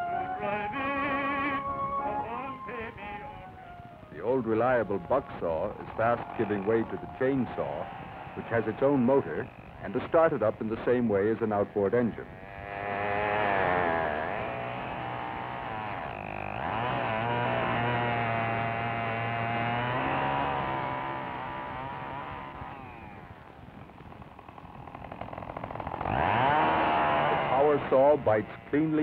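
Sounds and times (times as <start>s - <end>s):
chainsaw engine revving: 4.2s - 29.0s.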